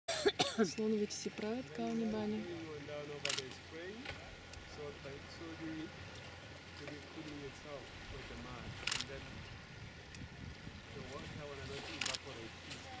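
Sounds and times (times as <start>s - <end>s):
quiet voices talking: 0.4s - 9.6s.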